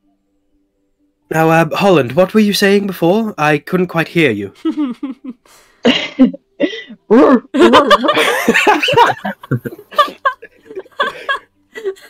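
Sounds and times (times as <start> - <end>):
laughter: 4.6 - 12.0.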